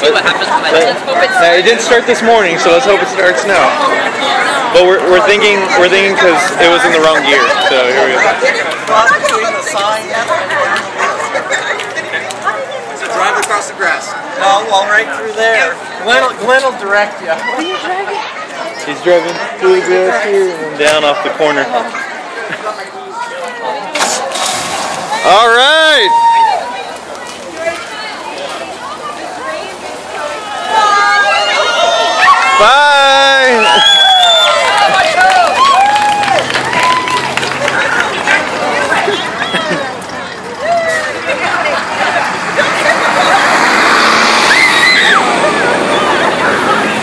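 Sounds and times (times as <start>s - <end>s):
voices: 0.0s - 47.0s
car pulling away: 40.9s - 47.0s.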